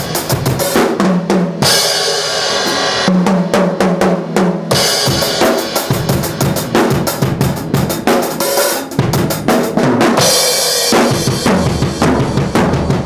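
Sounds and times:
bass drum and snare beat: 0.0 - 13.0
tom drum strokes: 0.0 - 13.0
cymbals crashing: 1.6 - 3.2.

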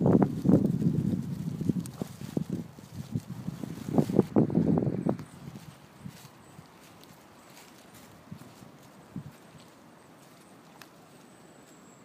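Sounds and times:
footsteps crunching through dead leaves: 0.0 - 12.0.

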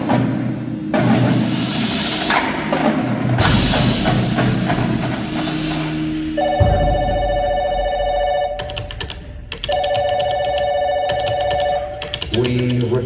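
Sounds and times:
telephone ringing: 6.2 - 12.5.

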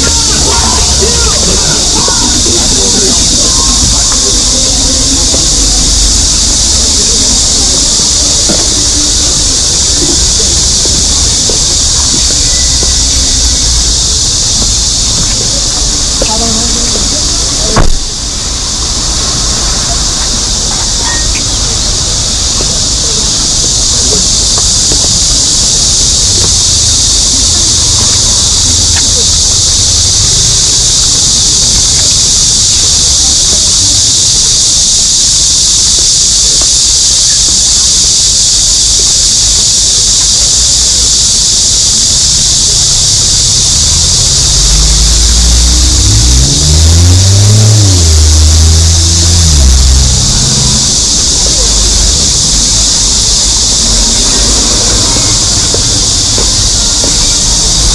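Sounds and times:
vehicle engine passing: 0.0 - 21.0, 42.8 - 57.9
cicadas buzzing: 0.0 - 57.9
low street traffic: 0.0 - 57.9.

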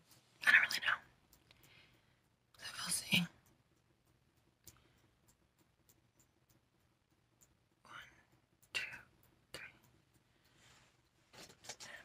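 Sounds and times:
woman half-whispering: 0.4 - 1.1, 7.9 - 9.9.

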